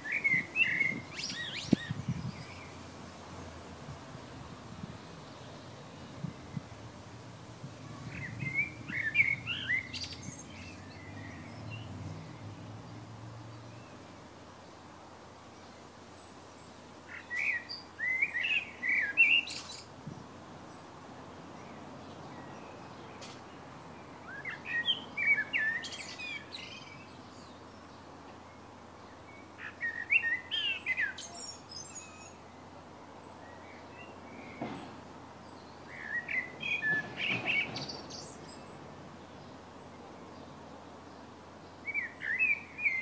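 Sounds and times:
faint steady hiss: 0:00.0 - 0:43.0
songbird singing: 0:00.0 - 0:43.0.

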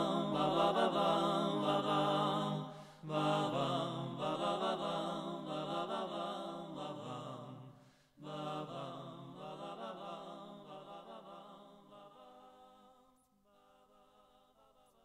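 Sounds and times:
men singing in close harmony: 0:00.0 - 0:12.5.

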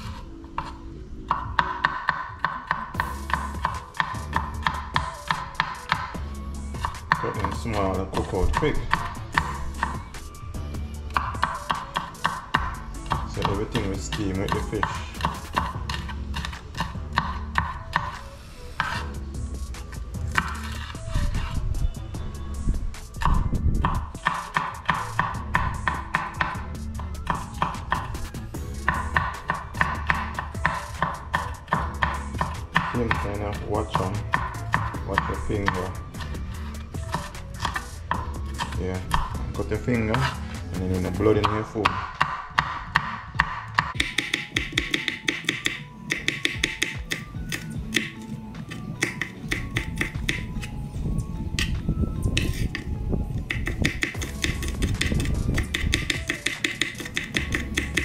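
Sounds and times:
background music: 0:00.0 - 0:58.0
knife tapping on cutting board: 0:41.4 - 0:48.2, 0:49.0 - 0:50.5, 0:53.5 - 0:58.0.

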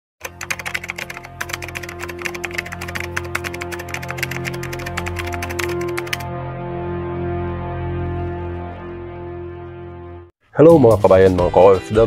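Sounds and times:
sustained music tones: 0:00.3 - 0:10.3.

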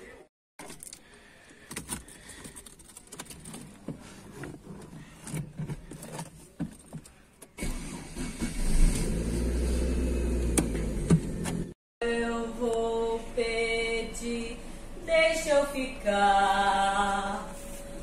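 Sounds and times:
keys clicking and rustling: 0:00.6 - 0:03.9
car engine starting and idling: 0:07.4 - 0:11.8.

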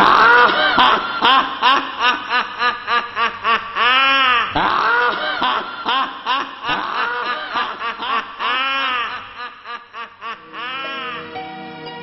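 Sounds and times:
person laughing: 0:00.0 - 0:11.3.

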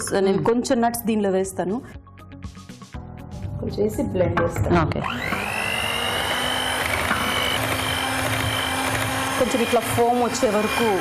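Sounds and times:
electric hand mixer whining: 0:04.9 - 0:11.0.

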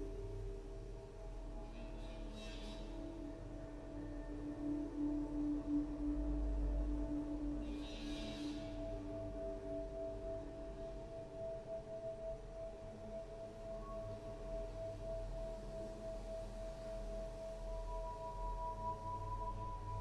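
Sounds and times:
ambient music of held tones: 0:00.0 - 0:20.0.

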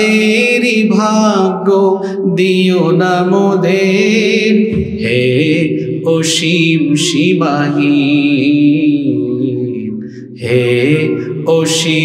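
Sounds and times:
man singing melismatic song: 0:00.0 - 0:12.0.

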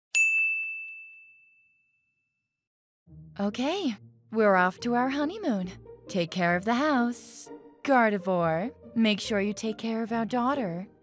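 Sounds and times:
bright ding: 0:00.1 - 0:02.1.

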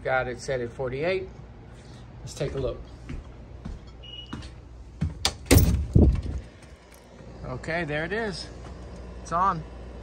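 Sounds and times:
door banging: 0:05.0 - 0:06.4.

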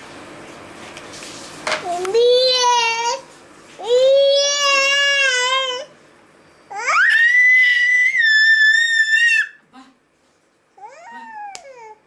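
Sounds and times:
toddler squealing: 0:06.8 - 0:09.6.

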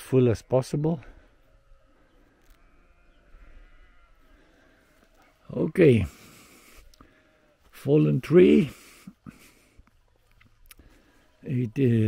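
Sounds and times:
faint sheep bleating: 0:01.0 - 0:06.3.

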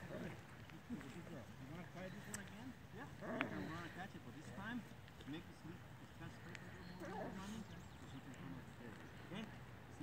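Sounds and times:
distant conversation: 0:00.0 - 0:10.0.

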